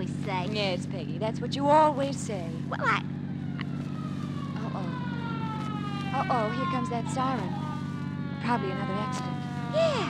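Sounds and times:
car engine drone: 0.0s - 10.0s
police siren wail: 3.1s - 10.0s.

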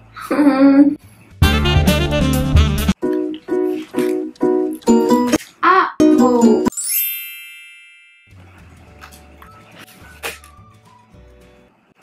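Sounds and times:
bell-like ding: 6.7s - 8.4s.

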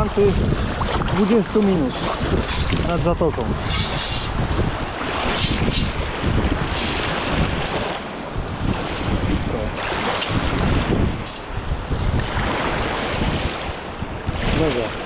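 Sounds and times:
small waves washing: 0.0s - 15.0s
wind buffeting microphone: 0.0s - 15.0s.

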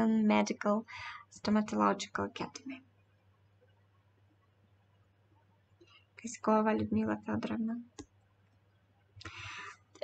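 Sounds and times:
woman speaking: 0.0s - 2.9s, 6.2s - 8.0s
faint low hum: 0.0s - 10.0s.

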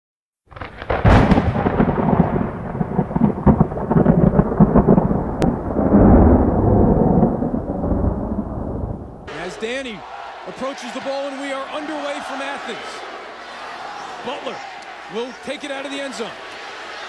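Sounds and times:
thunder crack and rumble: 0.5s - 9.3s.

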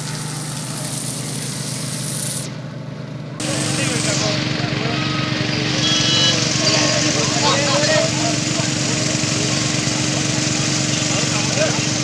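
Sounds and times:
heavy rain on wet road: 0.0s - 2.4s, 3.4s - 12.0s
engine droning: 0.0s - 12.0s.

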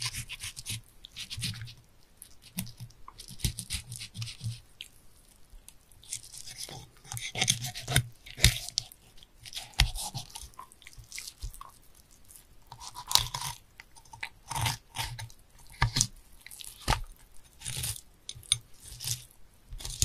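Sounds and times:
knife scraping fish scales: 0.0s - 1.7s, 6.1s - 8.9s, 17.6s - 19.2s.

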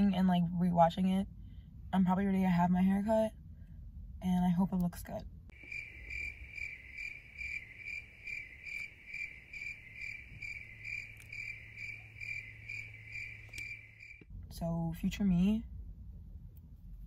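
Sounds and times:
cricket chirping: 5.5s - 14.3s.

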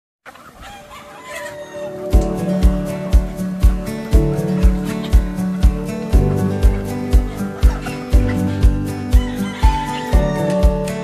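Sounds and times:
chickens clucking: 0.2s - 11.0s
rooster crowing: 0.6s - 2.2s, 9.0s - 11.0s.

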